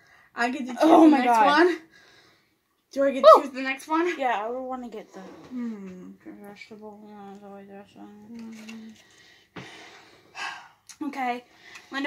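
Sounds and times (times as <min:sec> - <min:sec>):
woman humming: 0:05.5 - 0:06.3
quick breath: 0:09.0 - 0:10.8.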